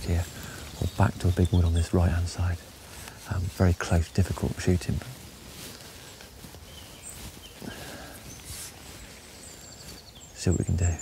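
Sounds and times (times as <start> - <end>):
low steady background noise: 0.0 - 11.0
faint bird calls: 4.2 - 11.0.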